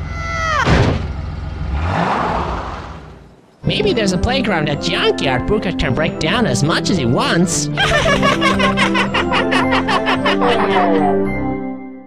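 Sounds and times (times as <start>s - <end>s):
garbage truck engine running: 0.0s - 3.7s
cartoon thud: 0.4s - 1.1s.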